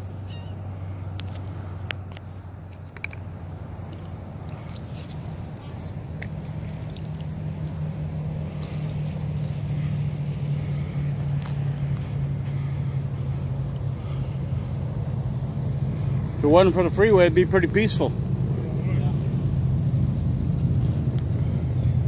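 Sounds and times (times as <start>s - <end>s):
distant freeway traffic rumble: 0.0s - 22.0s.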